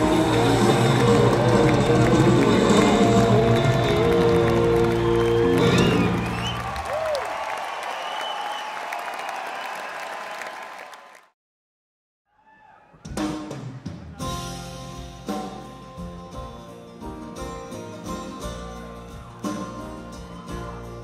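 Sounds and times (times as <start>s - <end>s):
crowd applause and cheering: 0.0s - 11.3s
crowd whistles: 0.6s - 11.2s.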